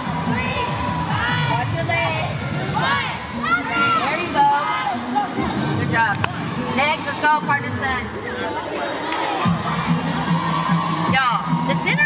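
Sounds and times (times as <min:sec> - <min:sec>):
cheerleaders shouting and cheering: 0:00.0 - 0:12.0.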